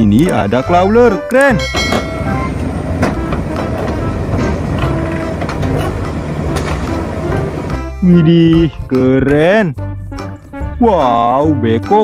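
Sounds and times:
diesel engine rumbling: 0.0 - 9.2.

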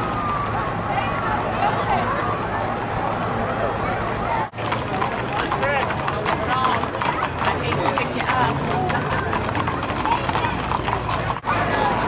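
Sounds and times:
people talking: 0.0 - 12.0
horse hooves clip-clopping on asphalt: 4.5 - 12.0.

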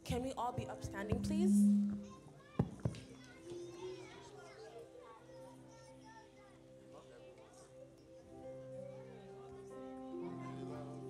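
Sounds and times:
soft held musical notes: 0.0 - 2.4
children chattering: 2.0 - 11.0.

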